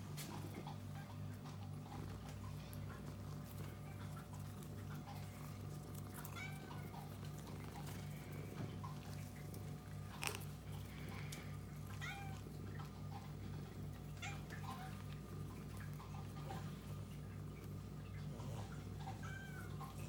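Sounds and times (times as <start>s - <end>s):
cats meowing softly: 0.5s - 20.0s.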